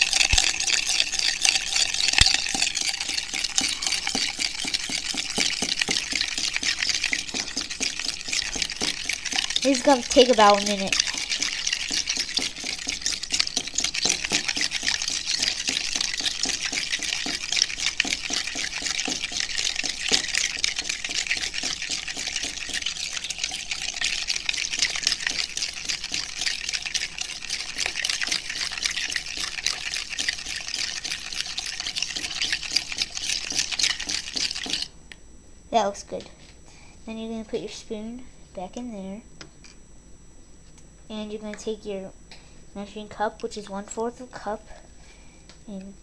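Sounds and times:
spoon stirring in plastic cup: 0.0s - 34.9s.

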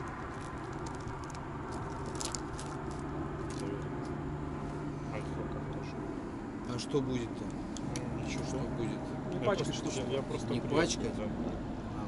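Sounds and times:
bag rustling and clicks: 0.0s - 3.7s
steady low hum: 0.0s - 12.0s.

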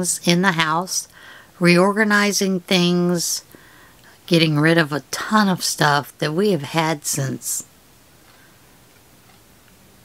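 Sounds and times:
wall clock ticking: 8.2s - 10.0s.

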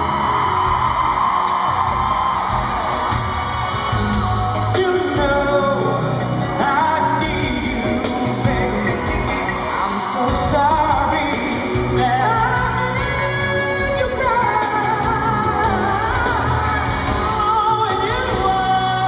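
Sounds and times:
band accompaniment: 0.0s - 19.0s
man singing into microphone: 4.6s - 19.0s.

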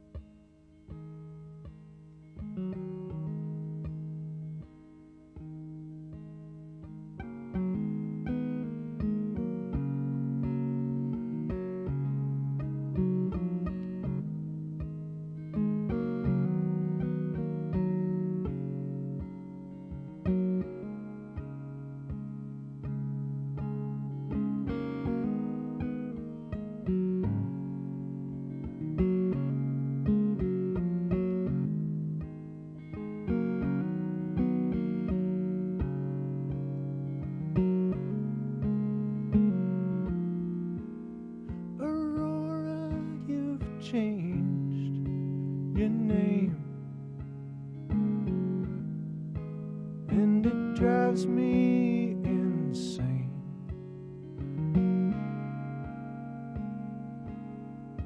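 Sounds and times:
electric guitar picking: 0.0s - 58.0s.

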